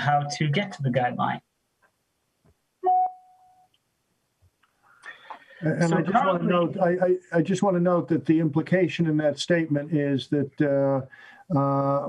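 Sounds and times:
short electronic beep: 0:02.8 - 0:03.7.

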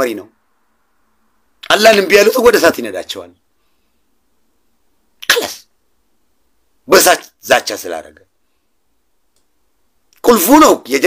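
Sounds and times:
speech: 0:00.0 - 0:00.3, 0:01.6 - 0:03.4, 0:05.2 - 0:05.7, 0:06.9 - 0:08.3, 0:10.2 - 0:11.0.

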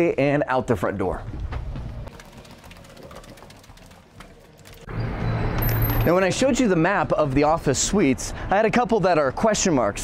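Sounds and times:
faint footsteps: 0:01.2 - 0:04.9.

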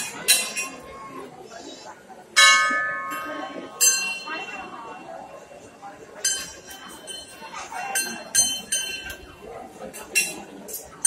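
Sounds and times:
temple bells ringing: 0:02.4 - 0:04.6, 0:06.2 - 0:07.4.

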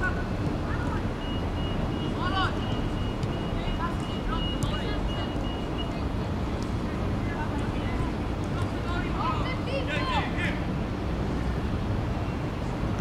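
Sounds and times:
distant voices of young players: 0:00.0 - 0:06.3
low rumble of city noise: 0:00.0 - 0:13.0.

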